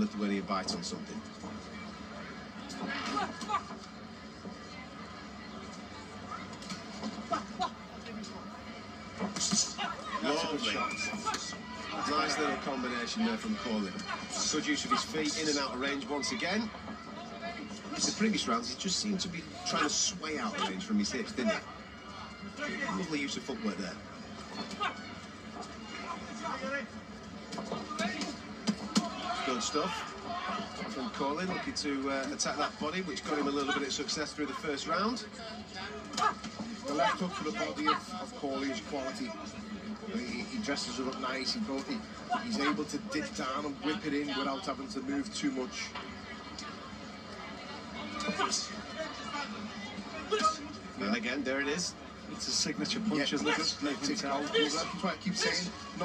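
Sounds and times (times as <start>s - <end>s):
arena background noise: 0.0s - 56.0s
commentators talking: 7.1s - 46.9s, 47.8s - 56.0s.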